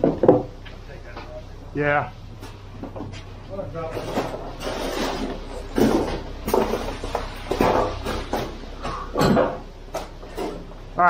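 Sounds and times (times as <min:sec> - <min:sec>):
steady low hum: 0:00.0 - 0:11.0
wet concrete scraping and sloshing: 0:04.0 - 0:08.6.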